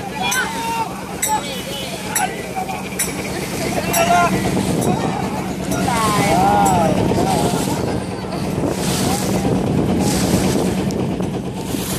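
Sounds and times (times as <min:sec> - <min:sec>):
voices shouting: 0:00.0 - 0:09.0
paddles splashing water: 0:00.0 - 0:11.9
wind on microphone: 0:03.4 - 0:11.9.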